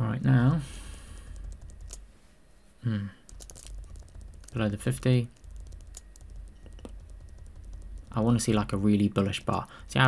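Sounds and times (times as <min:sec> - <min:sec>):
computer keyboard key clicks: 0:01.2 - 0:02.0, 0:03.3 - 0:09.6.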